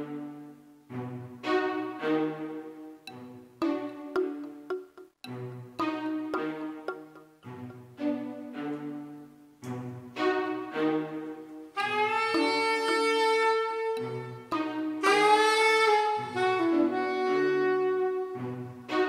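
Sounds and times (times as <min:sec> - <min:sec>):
synth mallet chords: 0:03.1 - 0:08.3, 0:11.8 - 0:16.9
soprano saxophone: 0:11.8 - 0:18.4.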